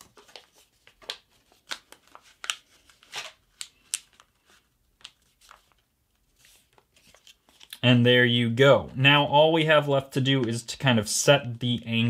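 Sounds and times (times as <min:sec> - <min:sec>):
paper being folded and creased: 0:00.0 - 0:07.8.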